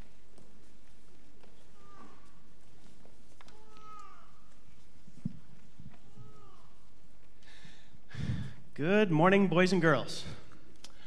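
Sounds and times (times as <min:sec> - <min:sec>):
high-pitched child voices: 0:03.5 - 0:04.4, 0:06.1 - 0:06.8.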